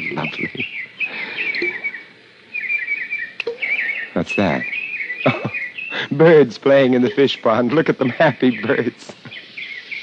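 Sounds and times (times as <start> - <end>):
small birds twittering: 0.0 - 10.0.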